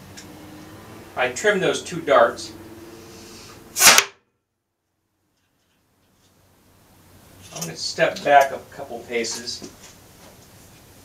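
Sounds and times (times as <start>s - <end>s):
blowgun dart hitting wood target: 3.8s - 4.2s.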